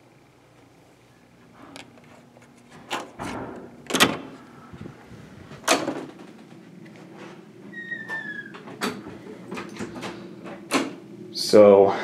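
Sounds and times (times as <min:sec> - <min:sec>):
falling squeak: 0:07.7 - 0:08.6.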